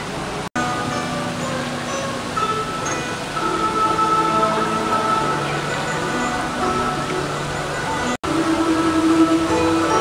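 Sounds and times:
zither plucked notes: 0:00.6 - 0:10.0.

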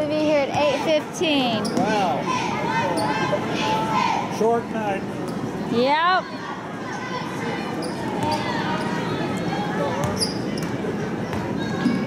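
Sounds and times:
murmur of crowd voices: 0:00.0 - 0:12.0
shoe squeak: 0:01.6 - 0:02.0, 0:02.9 - 0:03.2, 0:07.8 - 0:09.1, 0:10.0 - 0:12.0.

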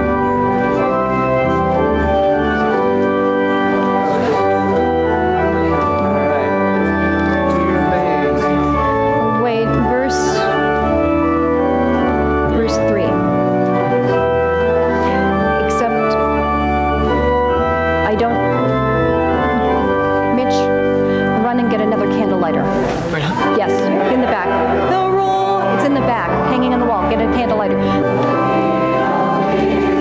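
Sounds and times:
church organ playing hymn chords: 0:00.0 - 0:30.0.

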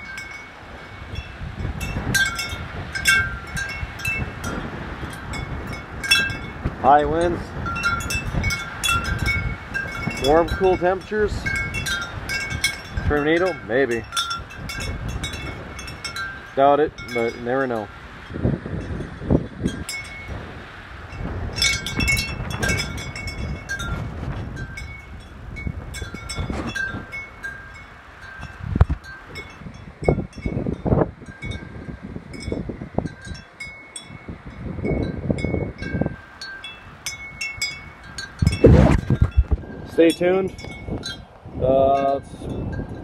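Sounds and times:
wind chimes ringing: 0:00.0 - 0:43.0
wind rumbling on microphone: 0:00.0 - 0:43.0.

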